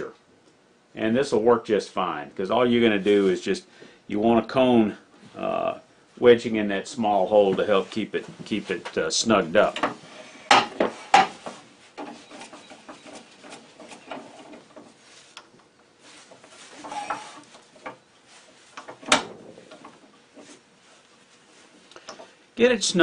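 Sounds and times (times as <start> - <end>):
metal knocks and scrapes: 9.7 - 15.2, 16.1 - 20.6.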